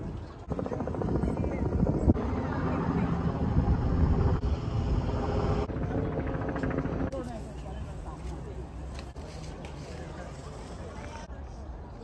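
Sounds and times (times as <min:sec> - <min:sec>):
faint voices: 0:00.0 - 0:04.4, 0:05.6 - 0:12.0
wind buffeting microphone: 0:00.0 - 0:06.9.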